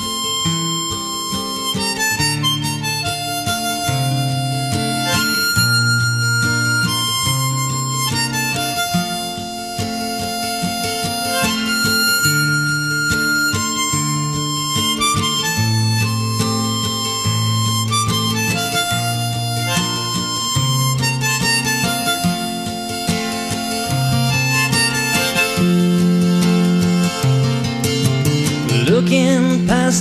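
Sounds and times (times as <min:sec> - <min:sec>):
acoustic guitar: 0:00.0 - 0:30.0
harmonica melody: 0:00.0 - 0:30.0.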